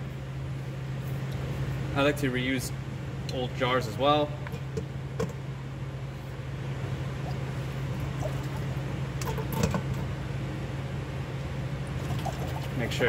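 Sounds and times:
water boiling with steady hiss: 5.0s - 10.4s, 11.7s - 13.0s.

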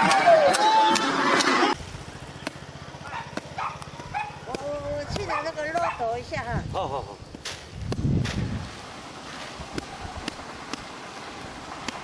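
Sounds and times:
loud crowd noise: 0.0s - 1.8s.

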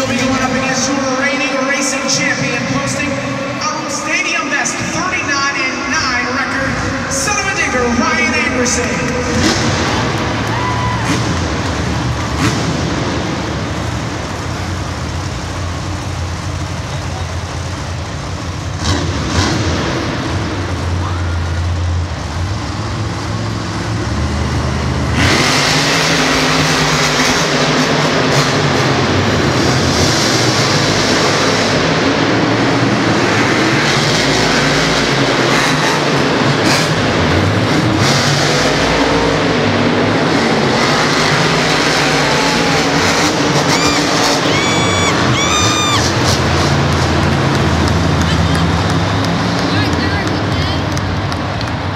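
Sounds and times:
monster truck engines revving: 0.0s - 51.9s.

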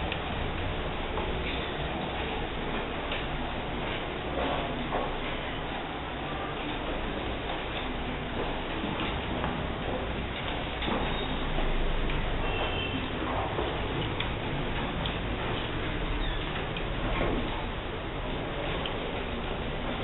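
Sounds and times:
classroom room noise: 0.0s - 20.0s.

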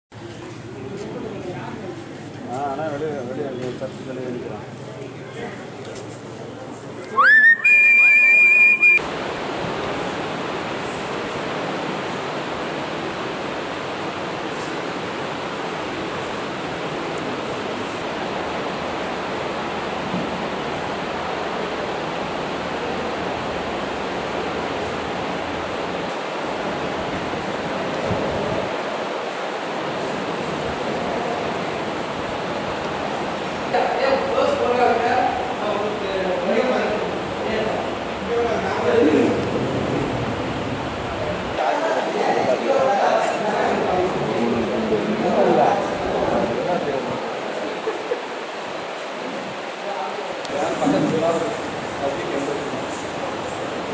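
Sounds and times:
steady rushing noise: 6.1s - 53.9s
shrill whistle-like tone: 7.1s - 9.0s.

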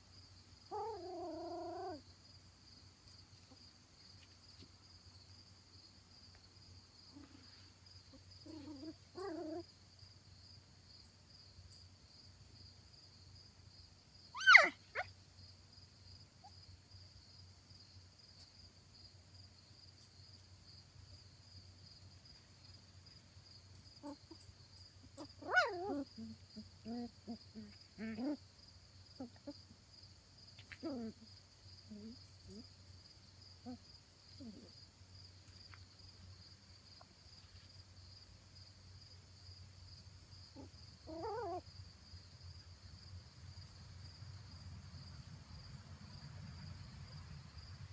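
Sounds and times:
puppy yelping: 0.7s - 2.0s, 8.4s - 9.6s, 14.3s - 15.1s, 24.0s - 24.4s, 25.0s - 28.4s, 29.1s - 29.6s, 30.6s - 31.3s, 40.6s - 41.6s
puppies yipping and whining: 8.5s - 9.6s, 14.4s - 15.1s, 24.0s - 24.4s, 25.0s - 28.4s, 40.6s - 41.6s
puppies grunting: 25.1s - 28.4s, 40.6s - 41.6s.

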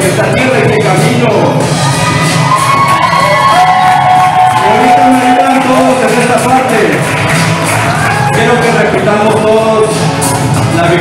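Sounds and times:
audience cheering and whooping: 1.6s - 9.0s.

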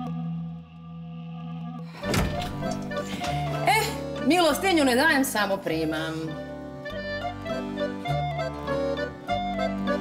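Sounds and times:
music: 0.0s - 10.0s
sudden thunk: 2.0s - 2.8s
voice: 3.7s - 6.3s.

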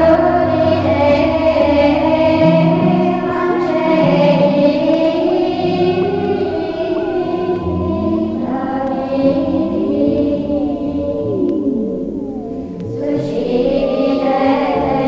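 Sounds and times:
choir singing held notes: 0.0s - 15.0s
sliding tones accompaniment: 0.0s - 15.0s.

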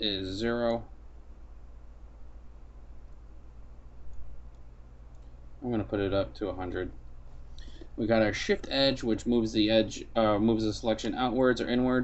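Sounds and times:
electrical hum: 0.0s - 12.0s
faint hiss: 0.0s - 12.0s.

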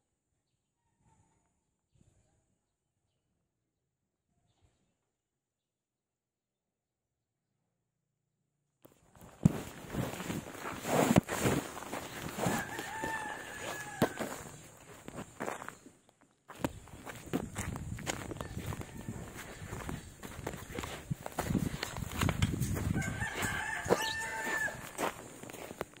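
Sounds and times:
footsteps: 9.1s - 26.0s
rooster crowing: 12.1s - 14.6s, 18.0s - 25.7s.

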